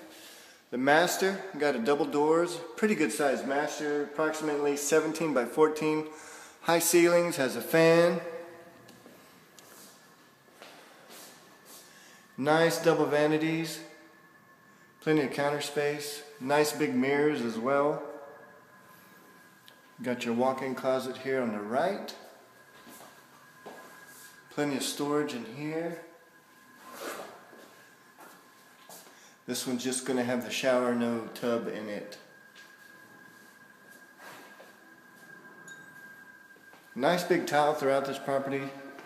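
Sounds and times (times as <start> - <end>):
faint high-pitched whine: 0.0 - 39.0
quiet steady hum: 0.0 - 39.0.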